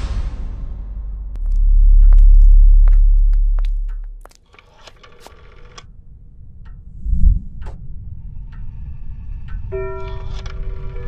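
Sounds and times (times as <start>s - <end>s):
rotary telephone dial clicks: 4.4s - 5.9s.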